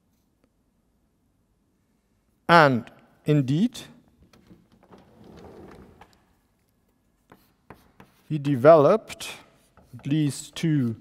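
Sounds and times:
chalk tapping on blackboard: 7.2 - 8.7, 9.4 - 11.0.

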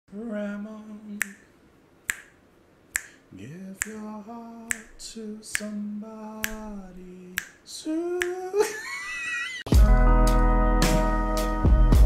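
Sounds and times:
man singing a steady note: 0.1 - 1.6, 3.3 - 8.8
finger snap: 1.1 - 8.5.

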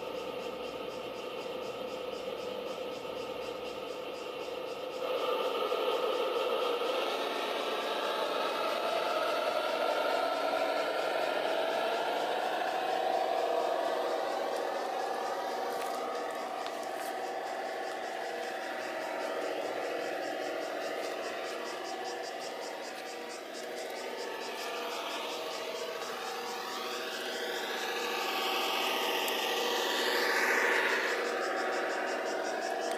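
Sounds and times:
model locomotive whine: 0.0 - 32.9.

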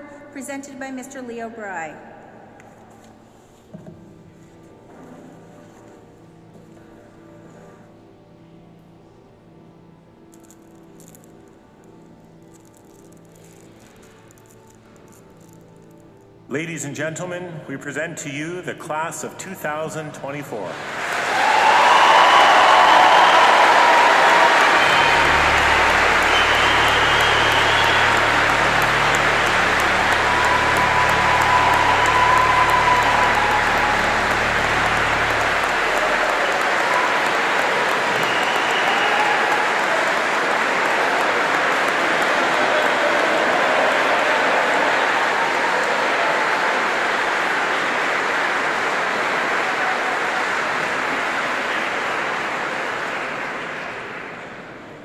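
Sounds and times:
crowd applauding and cheering: 20.6 - 55.0
whoops and shouts: 21.3 - 40.3.

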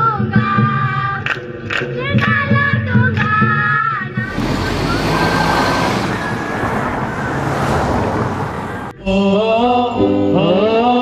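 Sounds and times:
rushing city traffic: 4.1 - 9.0.

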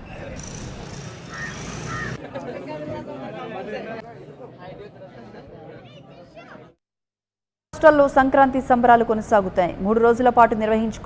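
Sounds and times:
crowd chatter: 0.0 - 6.8.

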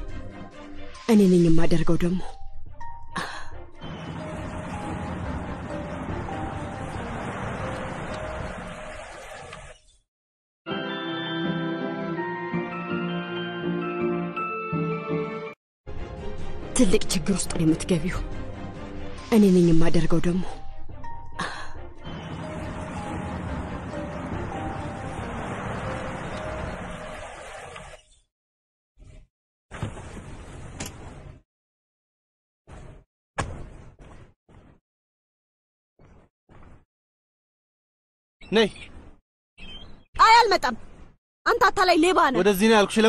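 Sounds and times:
music with chiming notes: 10.7 - 15.5.

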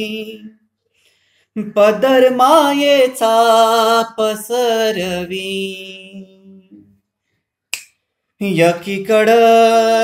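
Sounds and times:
man singing unaccompanied: 0.0 - 0.6, 1.6 - 7.0, 8.4 - 10.0.

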